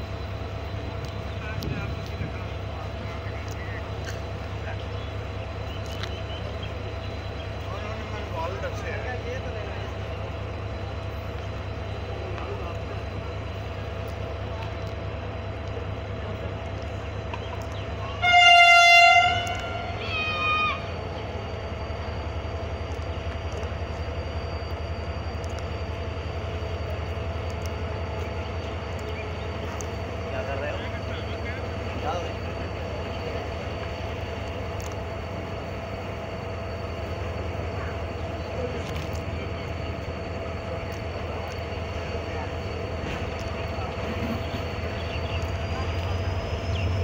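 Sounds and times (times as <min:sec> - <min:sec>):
diesel engine rumble: 0:00.0 - 0:47.0
locomotive horn blasts: 0:18.1 - 0:20.8.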